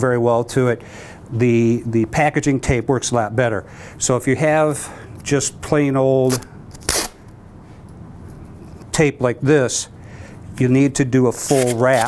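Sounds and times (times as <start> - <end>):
masking tape ripping off roll: 6.2 - 7.2, 11.3 - 12.0
tape handling: 6.2 - 7.2, 11.3 - 12.0.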